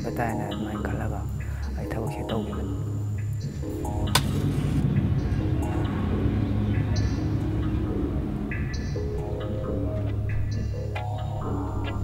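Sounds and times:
man speaking: 0.0s - 2.8s
background music: 0.0s - 12.0s.

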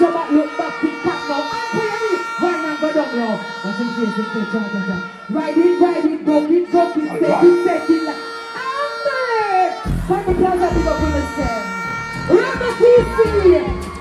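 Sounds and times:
woman deejaying into a microphone: 0.0s - 14.0s
heavy bass-driven dancehall beat: 9.8s - 14.0s.

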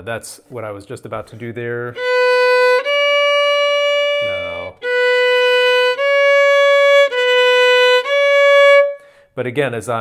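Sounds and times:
violin bowed notes: 1.9s - 9.2s.

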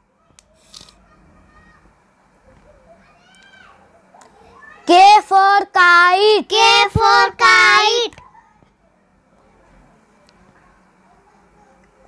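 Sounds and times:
child singing: 4.9s - 8.1s.

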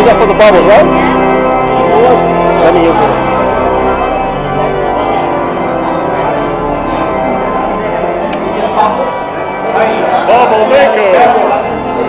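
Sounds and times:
church bells ringing: 0.0s - 12.0s
crowd voices: 0.0s - 12.0s.

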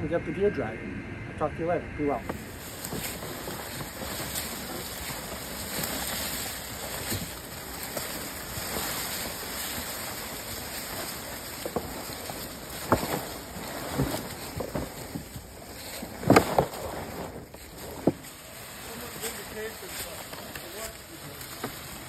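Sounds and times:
footsteps in leaves: 2.2s - 22.0s
plastic sled scraping over leaves: 2.2s - 22.0s.

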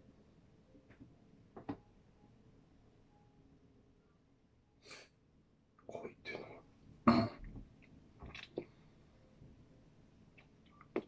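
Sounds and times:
man muttering and whispering: 5.8s - 6.6s.

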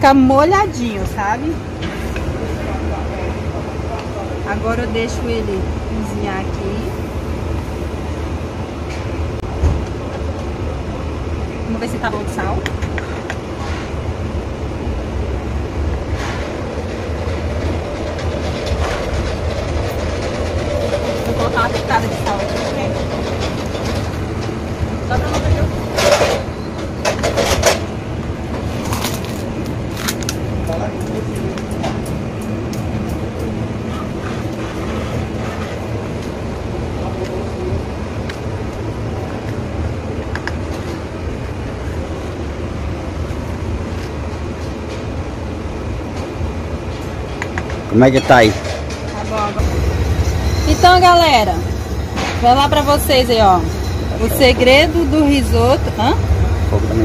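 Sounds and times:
truck engines rumbling: 0.0s - 57.0s
metal clatters and knocks: 17.2s - 27.9s, 46.9s - 54.8s.

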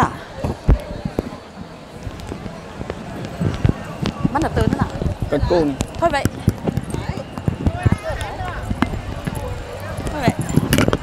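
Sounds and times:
voices talking: 0.0s - 11.0s.

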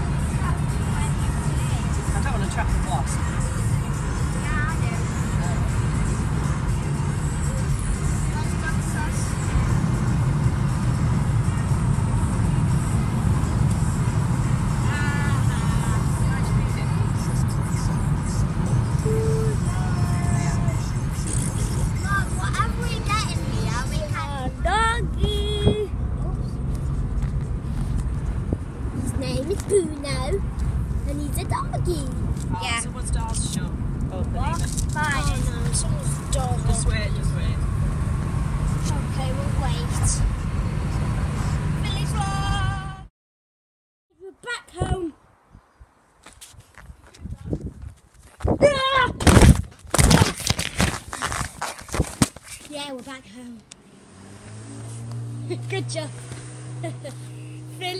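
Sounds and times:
road and engine noise in car: 0.0s - 43.1s, 44.1s - 57.9s.

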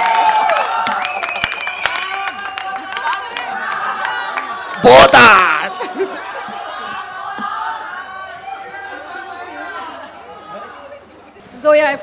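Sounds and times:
indistinct chatter: 2.2s - 12.0s.

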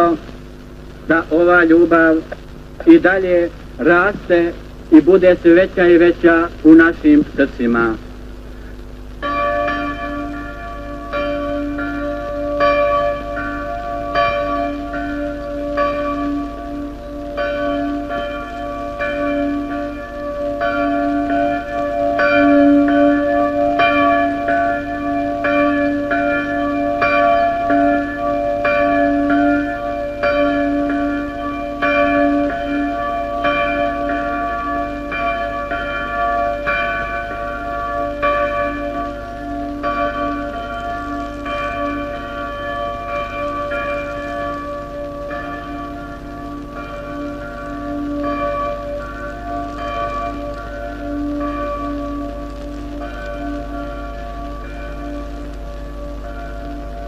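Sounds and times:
church bell ringing: 0.0s - 57.0s.

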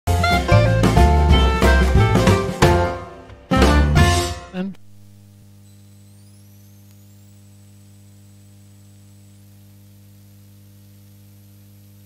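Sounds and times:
electrical mains hum: 4.5s - 12.0s
low hiss: 4.5s - 12.0s.

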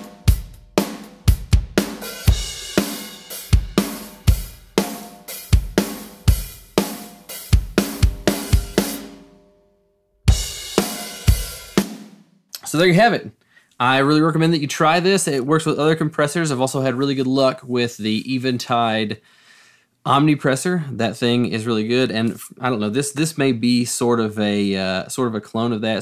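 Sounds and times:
drum kit playing a steady beat: 0.0s - 9.5s, 10.2s - 13.1s.

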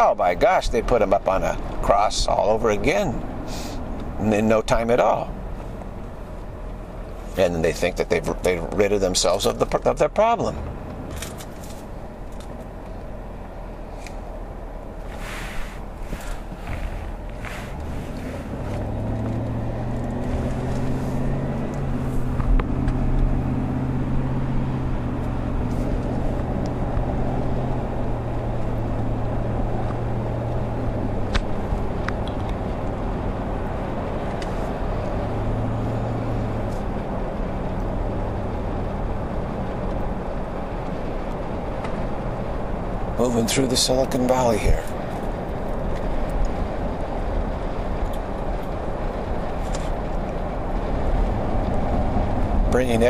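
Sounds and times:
car engine hum: 0.0s - 53.0s
road noise: 0.0s - 53.0s.

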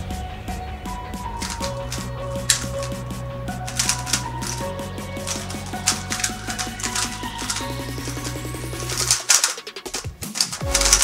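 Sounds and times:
background music with steady beat: 0.0s - 11.0s
puzzle cube plastic clicking: 1.4s - 3.0s, 3.7s - 4.6s, 5.3s - 11.0s.

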